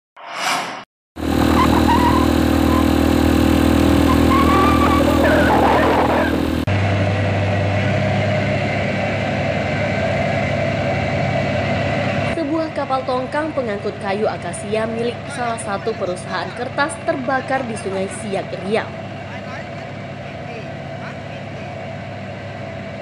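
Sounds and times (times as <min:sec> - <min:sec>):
brief whoosh: 0:00.2 - 0:00.9
engine drone with low hum: 0:01.2 - 0:23.0.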